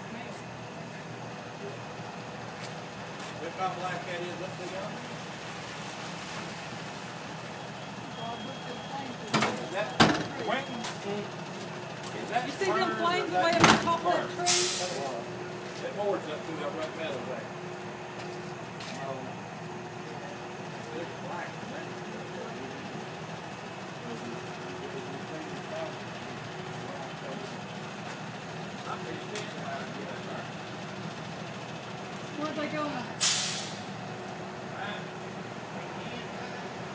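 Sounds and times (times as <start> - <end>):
road traffic: 0.0 - 36.9
vehicle engine idling: 0.0 - 36.9.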